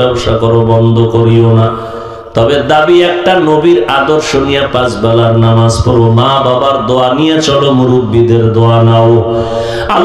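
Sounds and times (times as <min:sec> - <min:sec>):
man chanting a sermon: 0:00.0 - 0:10.0.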